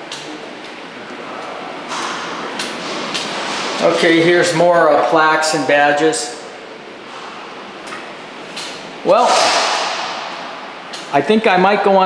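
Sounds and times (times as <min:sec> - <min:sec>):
indoor hall room noise: 0:00.0 - 0:12.0.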